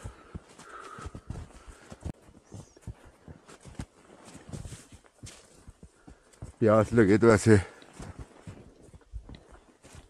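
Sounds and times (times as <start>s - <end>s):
footsteps in deep snow: 0.0s - 10.0s.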